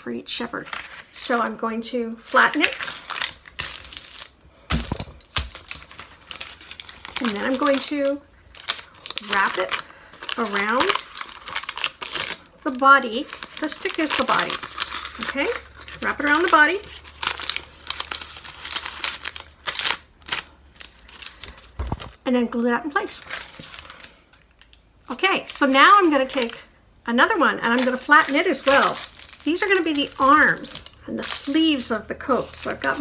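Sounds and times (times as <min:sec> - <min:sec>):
paper crinkling: 0:00.5 - 0:01.6, 0:02.2 - 0:22.2, 0:23.0 - 0:26.6, 0:27.6 - 0:33.0.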